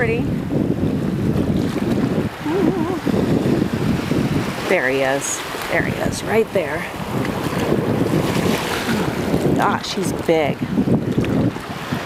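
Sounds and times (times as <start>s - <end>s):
shallow surf washing: 0.0s - 12.0s
wind noise on microphone: 0.0s - 12.0s
person humming: 2.4s - 3.1s.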